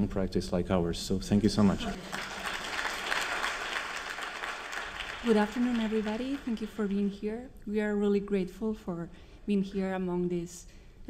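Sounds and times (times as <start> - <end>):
audience applauding: 1.6 - 7.2.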